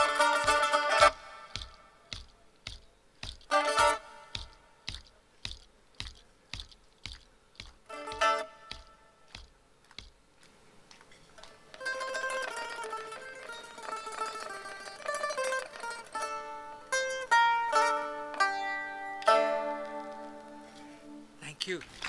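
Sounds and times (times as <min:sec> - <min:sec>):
plucked long-necked lute: 0:00.0 - 0:07.2, 0:07.8 - 0:09.5, 0:11.4 - 0:21.2.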